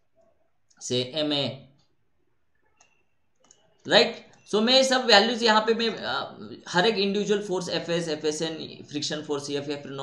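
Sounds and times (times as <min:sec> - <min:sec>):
man talking: 0:00.8 - 0:01.8, 0:03.8 - 0:10.0.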